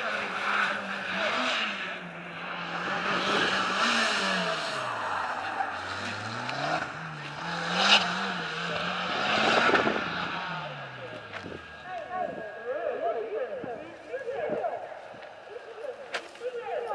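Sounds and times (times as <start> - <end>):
car engine revving: 0.0 - 14.1
tyre noise: 2.5 - 12.5.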